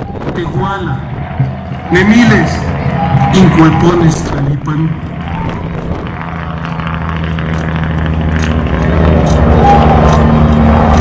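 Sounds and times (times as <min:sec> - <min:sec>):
low drone of steady tones: 0:00.0 - 0:11.0.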